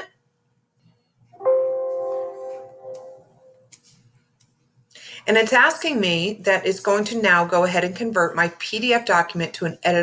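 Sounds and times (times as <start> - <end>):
computer alert chime: 1.4 - 3.7.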